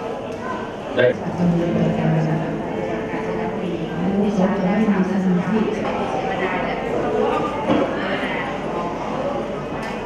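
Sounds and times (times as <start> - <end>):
woman speaking into a microphone: 1.2 - 6.9.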